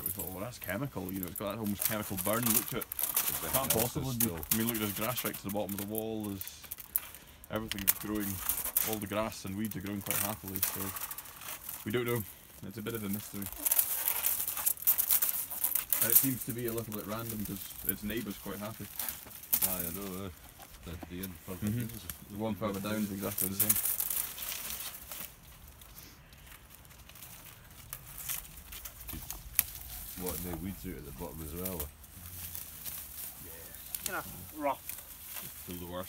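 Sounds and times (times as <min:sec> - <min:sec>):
canes dragged through grass: 0:00.0 - 0:36.0
dead bramble canes crackling: 0:00.0 - 0:36.0.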